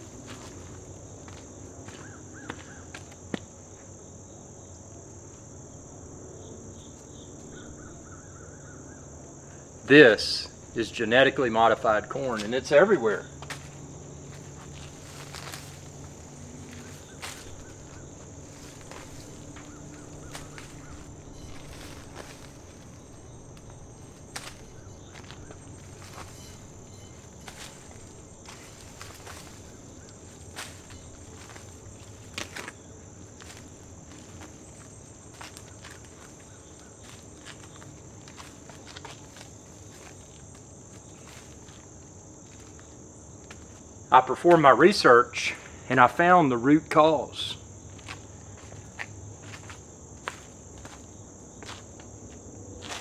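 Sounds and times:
insects chirping: 0:00.0 - 0:53.0
plants rustling: 0:11.7 - 0:44.0
footsteps: 0:12.0 - 0:43.9, 0:47.9 - 0:53.0.

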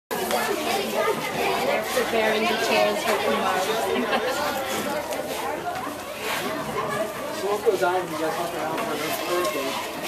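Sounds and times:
children chattering: 0:00.1 - 0:10.0.

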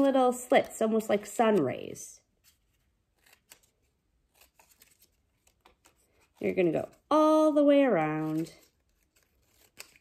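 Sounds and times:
scissors snipping paper: 0:00.0 - 0:07.1, 0:08.0 - 0:10.0.

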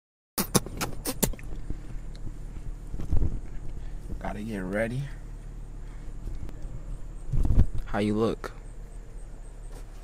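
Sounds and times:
car rumble from inside cabin: 0:00.4 - 0:10.0.

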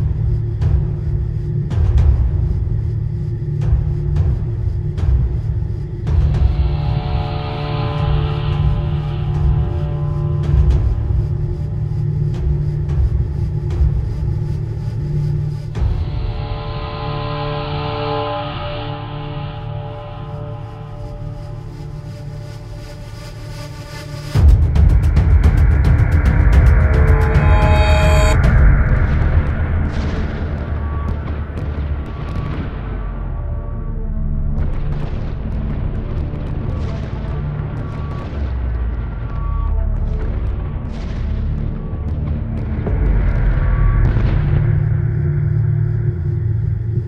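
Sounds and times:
deep steady rumble: 0:00.0 - 0:47.0
low hum: 0:00.0 - 0:47.0.

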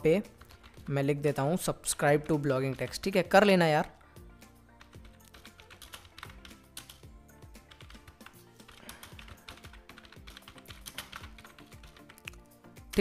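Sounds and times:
quiet background music: 0:00.0 - 0:13.0
keyboard typing: 0:00.2 - 0:01.2, 0:02.0 - 0:03.4, 0:04.8 - 0:13.0.

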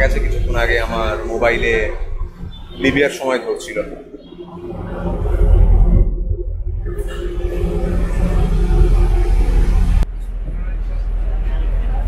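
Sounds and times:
ferry engine rumbling: 0:00.0 - 0:12.0.

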